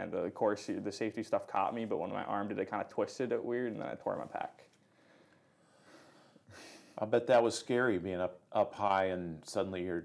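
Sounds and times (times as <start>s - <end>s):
faint breath: 4.8s - 7.0s.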